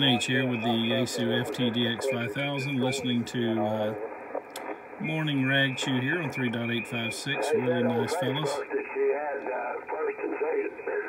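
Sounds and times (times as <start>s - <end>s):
radio voice talking: 0.0s - 11.0s.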